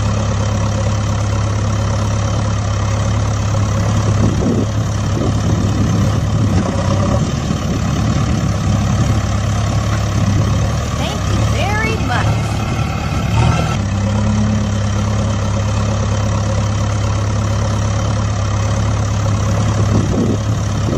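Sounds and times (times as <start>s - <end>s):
tractor engine running: 0.0s - 20.9s
gliding voice-like sounds: 11.0s - 12.6s.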